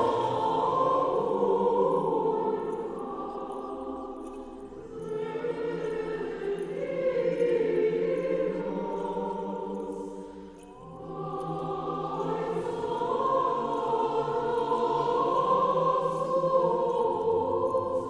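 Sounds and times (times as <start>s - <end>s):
choir singing church chant: 0.0s - 18.0s.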